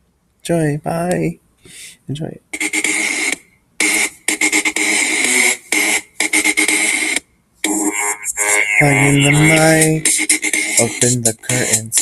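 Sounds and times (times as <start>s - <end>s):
electronic pop backing track: 2.6s - 12.0s
person singing: 7.8s - 12.0s.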